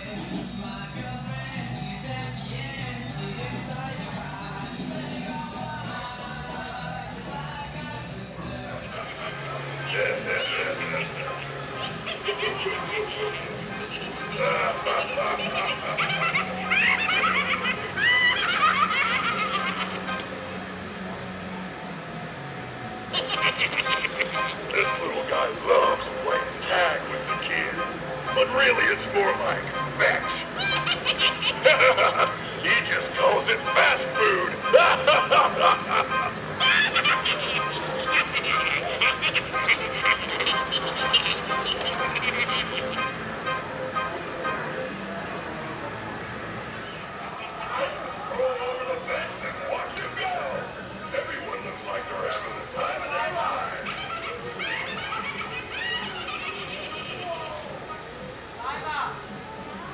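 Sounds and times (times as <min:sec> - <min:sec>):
music from small speaker: 0:00.0 - 0:46.9
clown character voice: 0:08.8 - 0:20.2, 0:23.1 - 0:43.2, 0:47.4 - 0:57.7.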